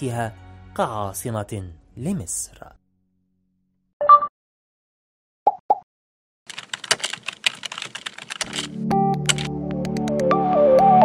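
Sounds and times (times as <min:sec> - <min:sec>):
computer keyboard typing clicks: 0:06.5 - 0:10.2.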